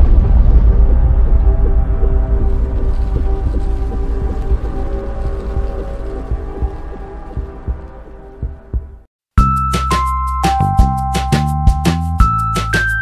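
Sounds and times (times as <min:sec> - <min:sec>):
sustained drone tones: 0:00.0 - 0:09.1
deep pulsing bass: 0:00.0 - 0:09.5.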